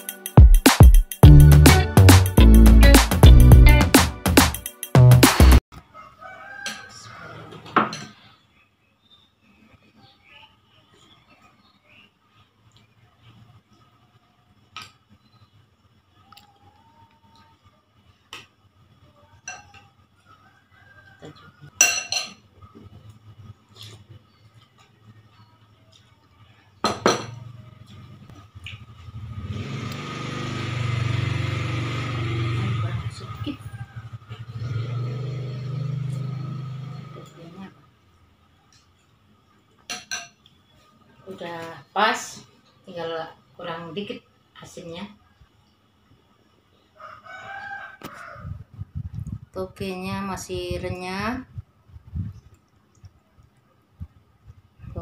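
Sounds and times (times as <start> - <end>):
rooster crowing: 5.8 - 8.0, 19.4 - 21.8, 32.9 - 37.0, 46.9 - 48.7
cutlery clinking on ceramic bowl: 19.4 - 19.9, 21.8 - 22.5, 39.9 - 40.4.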